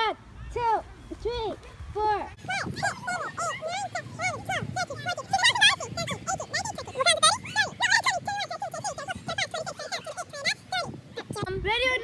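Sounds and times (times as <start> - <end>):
children counting aloud: 2.4 - 11.4.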